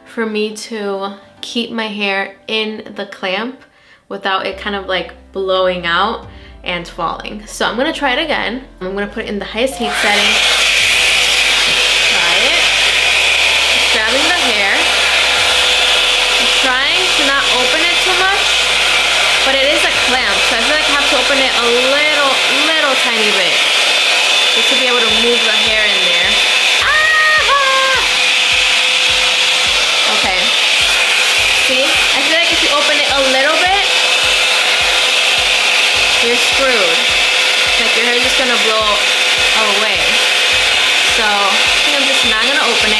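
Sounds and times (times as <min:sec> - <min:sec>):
hot-air wand blowing: 0:09.8 - 0:42.9.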